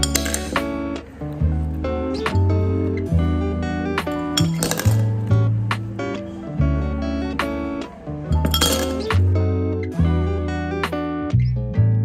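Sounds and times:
ice cubes clinking into glass: 0:00.0 - 0:00.6, 0:04.4 - 0:05.1, 0:08.3 - 0:09.1
acoustic guitar music: 0:00.0 - 0:12.0.

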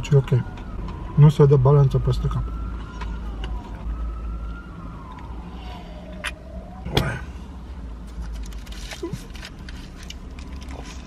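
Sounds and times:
distant siren wailing: 0:00.0 - 0:07.8.

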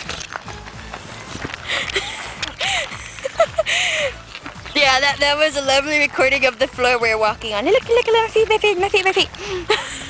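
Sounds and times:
footsteps on asphalt: 0:00.0 - 0:10.0.

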